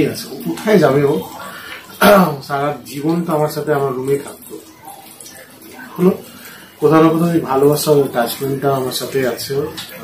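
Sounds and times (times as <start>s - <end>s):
man speaking: 0.0s - 4.8s, 5.8s - 10.0s.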